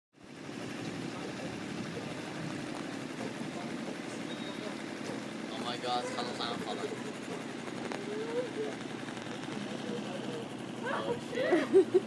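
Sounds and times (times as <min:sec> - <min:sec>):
boat motor running: 0:00.2 - 0:12.0.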